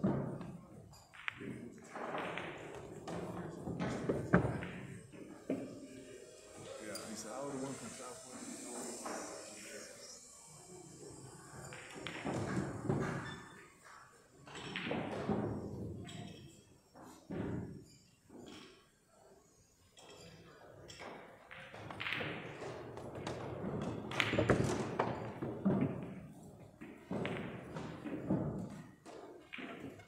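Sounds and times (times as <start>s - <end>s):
pool balls clicking and knocking: 0.0s - 6.6s, 10.9s - 18.9s, 19.9s - 30.0s
voices talking: 5.5s - 11.2s.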